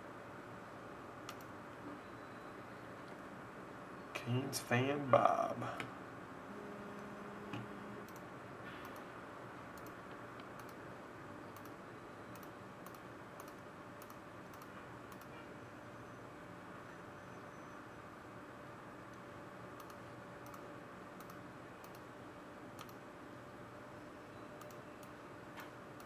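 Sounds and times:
low hum and hiss: 0.0s - 26.0s
faint clicks: 1.3s - 1.5s, 9.7s - 10.8s, 11.5s - 15.3s, 19.8s - 20.6s, 21.2s - 22.0s, 22.8s - 23.0s, 24.6s - 26.0s.

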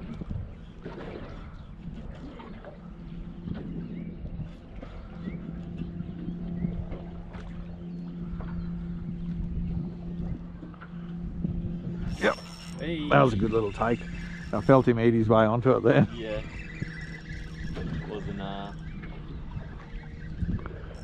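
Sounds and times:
boat motor humming: 0.0s - 21.0s
water rumbling: 0.0s - 21.0s
wind: 0.0s - 21.0s.

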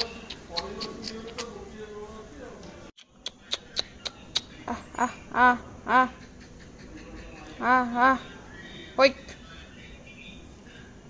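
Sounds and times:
person calling a dog: 0.0s - 1.6s.

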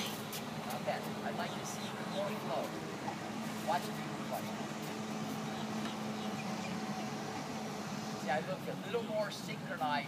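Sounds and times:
steady low background hum: 0.0s - 10.0s.

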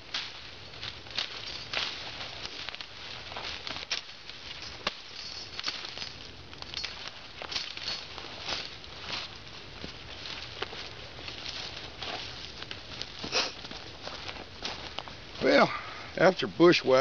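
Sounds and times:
twigs rustling and snapping: 0.0s - 16.0s
footsteps crunching through dry leaves: 0.0s - 17.0s.

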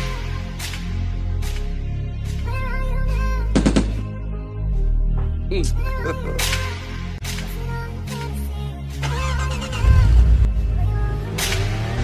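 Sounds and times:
background music with heavy bass: 0.0s - 12.0s
car engine revving: 9.1s - 12.0s.

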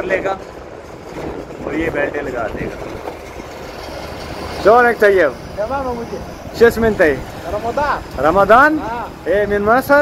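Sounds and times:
distant engines rumbling: 0.0s - 10.0s
man talking: 4.6s - 10.0s.

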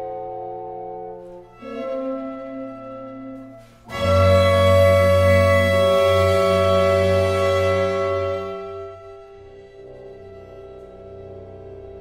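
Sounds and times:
chamber ensemble playing chords: 0.0s - 12.0s.

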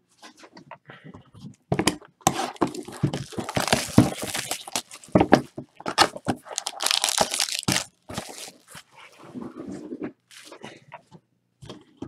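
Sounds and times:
rustling and handling: 2.3s - 10.7s
plastic wrapping crinkling and tearing: 2.6s - 5.4s, 6.0s - 8.9s.

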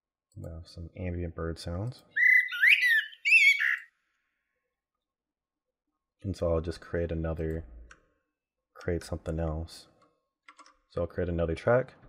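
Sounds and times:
birds chirping: 2.1s - 3.9s.

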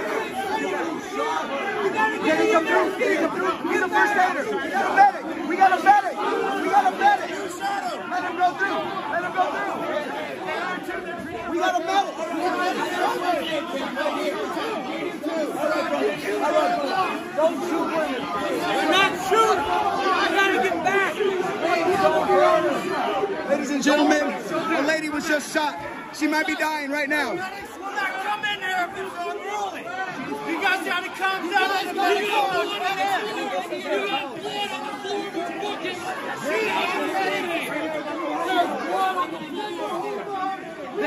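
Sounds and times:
crowd talking: 0.0s - 41.0s.

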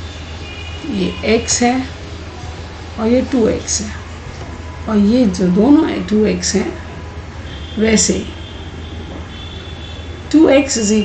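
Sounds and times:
low background hum: 0.0s - 11.0s
person speaking: 0.8s - 1.9s, 3.0s - 4.0s.

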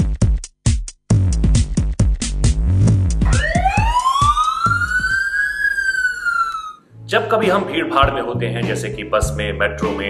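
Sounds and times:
drum machine beat with heavy bass: 0.0s - 5.2s
siren wail: 3.2s - 6.8s.

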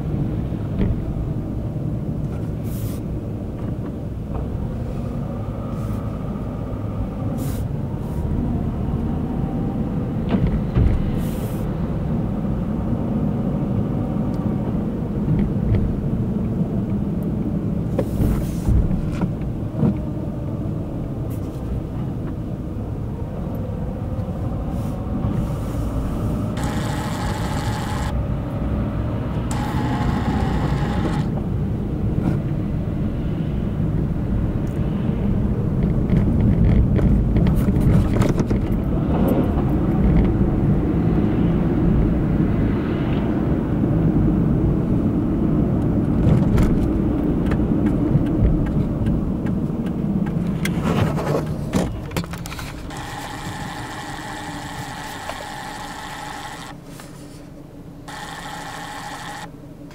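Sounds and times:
car cabin road and engine rumble: 0.0s - 59.9s.

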